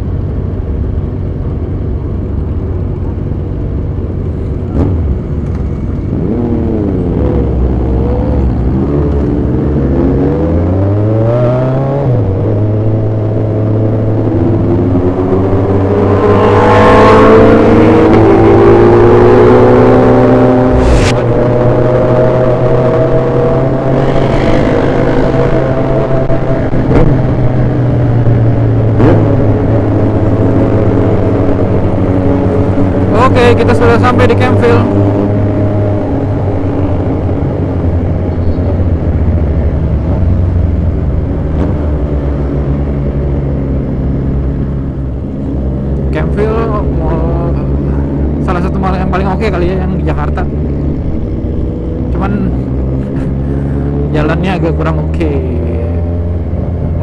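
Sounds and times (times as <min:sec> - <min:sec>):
wind noise: 0:14.3 - 0:33.1.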